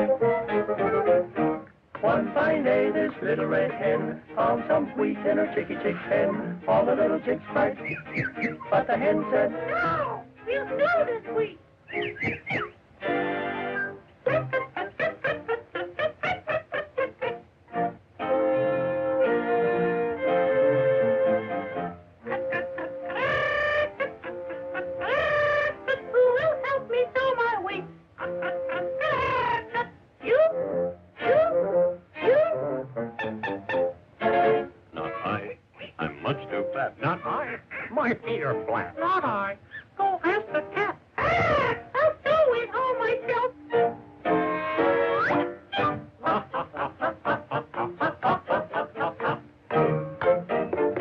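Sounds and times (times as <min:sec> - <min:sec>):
orchestral cartoon music with brass: 0:00.0 - 0:07.8, 0:08.4 - 0:11.4, 0:13.0 - 0:14.5, 0:17.7 - 0:25.7, 0:30.3 - 0:35.4, 0:43.0 - 0:46.2.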